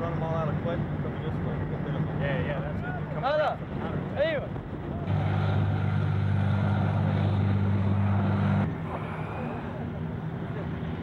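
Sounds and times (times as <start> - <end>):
engine low drone: 0.0 - 11.0
faint engine rumble: 0.0 - 11.0.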